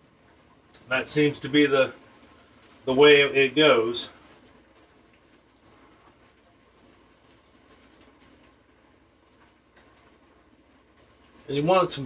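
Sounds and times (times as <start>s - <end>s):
soft rustling of dough handling: 0.0s - 12.0s.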